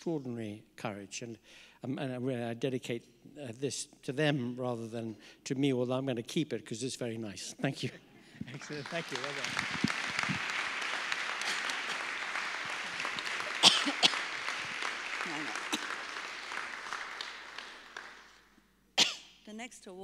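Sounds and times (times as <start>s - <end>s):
audience applauding: 8.4s - 18.6s.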